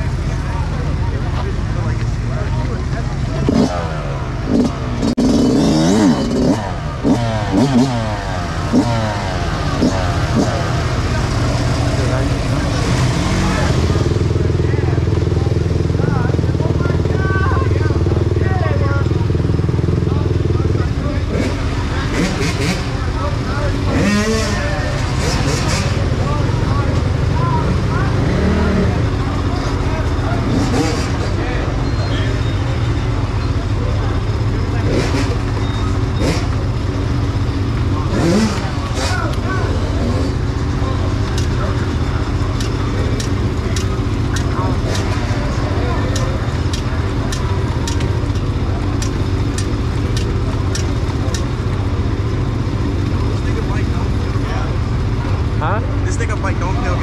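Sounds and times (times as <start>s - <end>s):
dirt bike engines revving: 0.0s - 57.0s
people's voices: 0.0s - 57.0s
engine idling: 5.9s - 57.0s.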